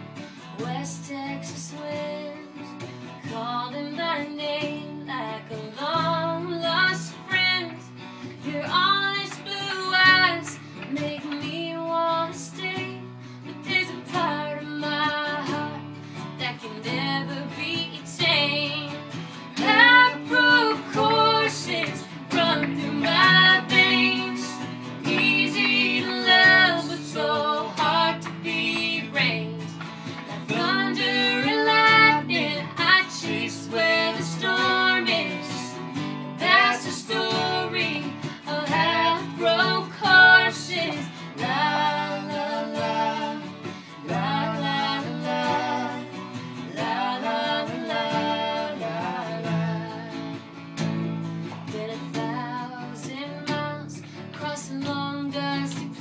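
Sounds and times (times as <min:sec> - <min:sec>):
woman singing: 0:00.0 - 0:50.6, 0:51.4 - 0:56.0
acoustic guitar: 0:00.0 - 0:56.0.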